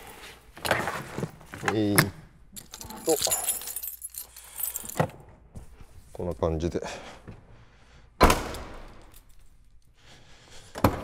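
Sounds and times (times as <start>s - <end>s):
small metal parts jingling: 2.5s - 5.0s.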